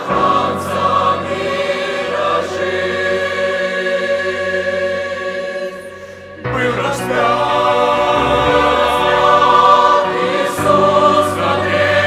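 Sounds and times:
mixed choir singing a hymn: 0:00.0 - 0:12.0.

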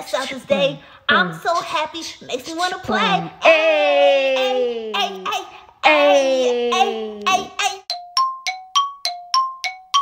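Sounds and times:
bell-like ding notes: 0:07.9 - 0:10.0.

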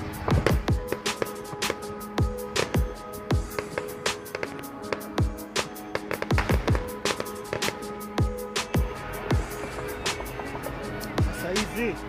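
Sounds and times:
music with sustained notes: 0:00.0 - 0:12.0
fireworks bangs: 0:02.6 - 0:07.9.

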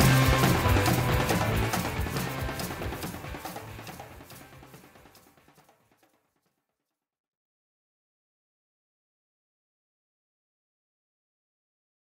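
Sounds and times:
rock band with drum kit: 0:00.0 - 0:05.6.

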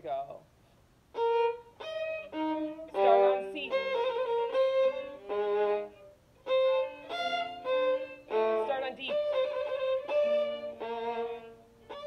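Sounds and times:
violin playing a trill: 0:01.1 - 0:12.0.

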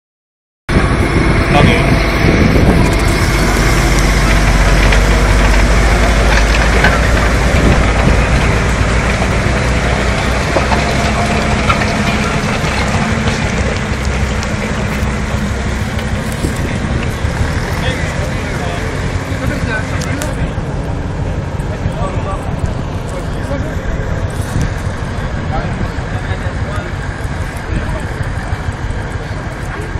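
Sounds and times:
tractor engine running: 0:00.7 - 0:29.9.

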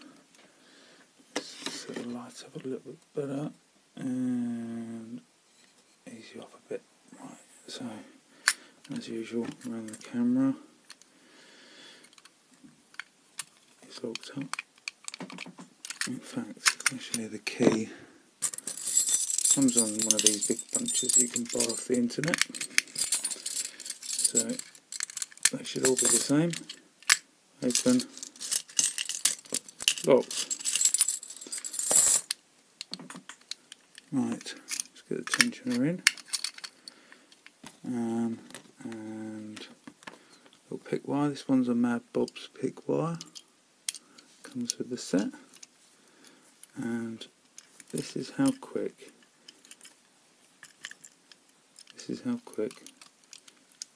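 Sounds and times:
keys jangling on ring: 0:18.4 - 0:26.7, 0:27.7 - 0:32.3.

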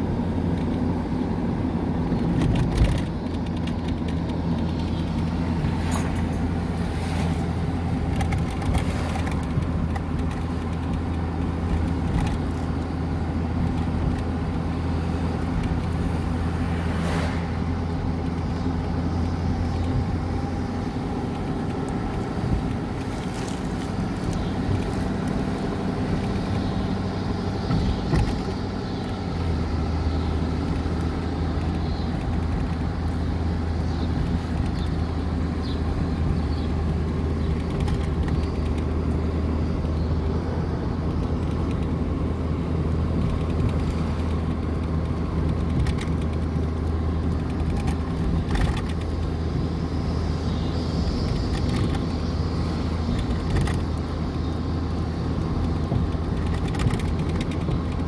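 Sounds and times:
vehicle engine drone: 0:00.0 - 0:58.0.

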